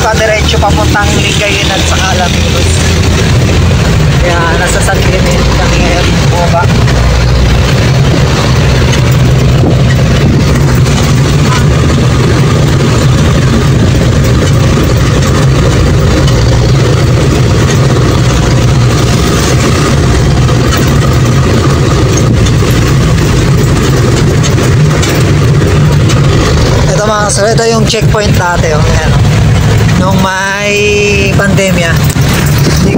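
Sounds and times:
diesel engine running: 0.0 - 32.9
road and cabin noise: 0.0 - 32.9.

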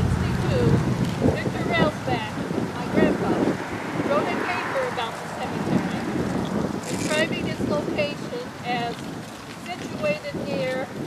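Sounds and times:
woman speaking: 0.0 - 3.5, 4.1 - 6.1, 6.9 - 9.0, 9.7 - 10.9
wind buffeting microphone: 0.0 - 11.0.

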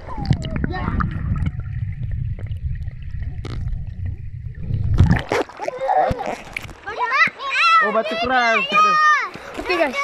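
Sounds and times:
muffled underwater river rumble: 0.0 - 5.3.

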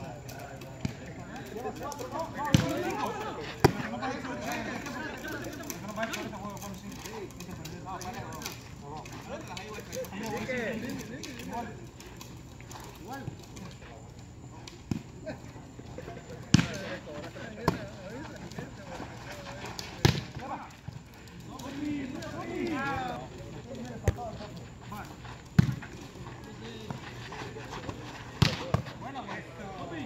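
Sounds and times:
volleyball slaps: 16.5 - 16.9, 20.0 - 20.5, 25.6 - 25.8, 28.4 - 29.0.

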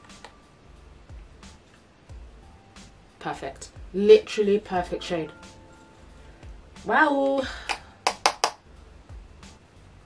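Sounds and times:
makeup brush tapping compact: 8.1 - 8.6.

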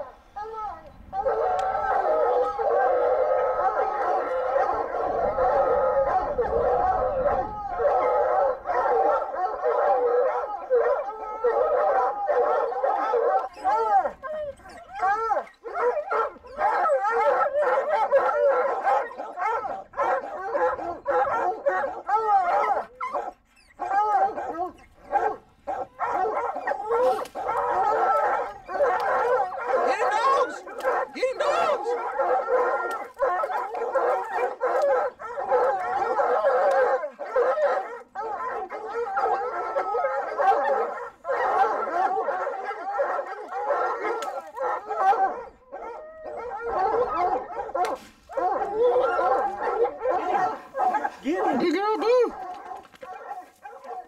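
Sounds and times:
hounds baying: 0.0 - 54.0.

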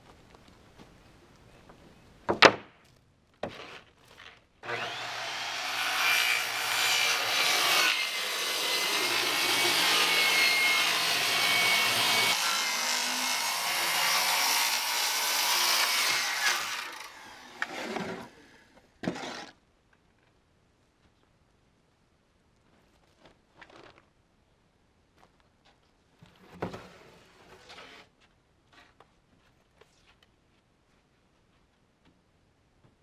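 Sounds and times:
circular saw cutting plywood: 4.6 - 19.5.

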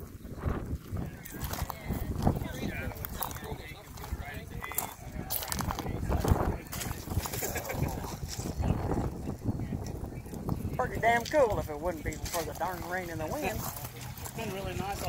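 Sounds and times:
faint voices: 0.0 - 15.0
footsteps crunching on ballast: 0.0 - 15.0.

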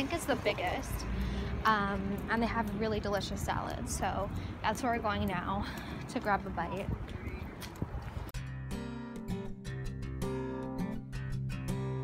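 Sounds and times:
street noise: 0.0 - 8.4
plucked guitar music: 8.4 - 12.0.

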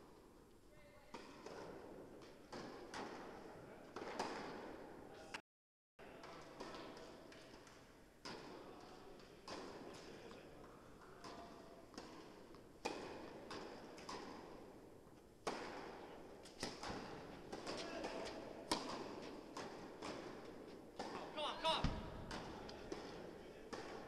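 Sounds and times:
tennis ball hit with rackets: 1.1 - 4.9, 6.2 - 10.2, 11.2 - 14.8, 15.4 - 24.0.

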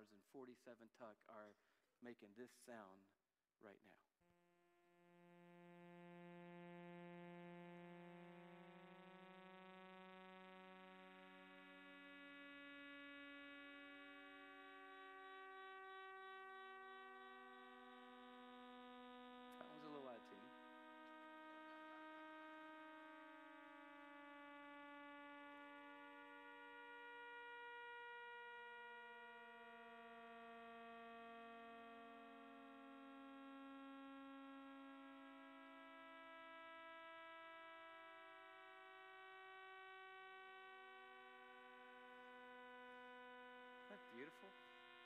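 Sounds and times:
sustained tones shifting chord: 5.3 - 45.0.

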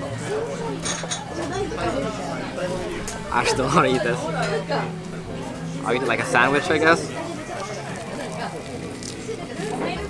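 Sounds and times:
people talking in a restaurant: 0.0 - 10.0.

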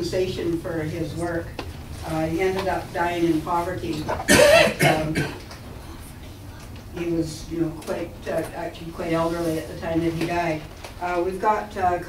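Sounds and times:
person coughing: 4.2 - 5.4.

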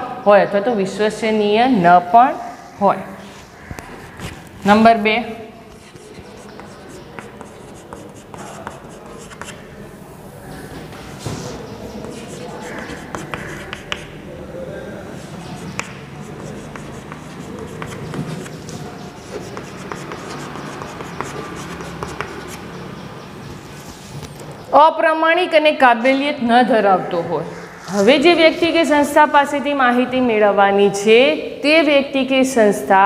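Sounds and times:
chalk scratching on blackboard: 5.6 - 9.7, 11.1 - 14.2, 15.1 - 22.9, 27.5 - 29.0
chalk tapping on board: 5.7 - 9.6, 11.2 - 14.2, 15.2 - 22.7.

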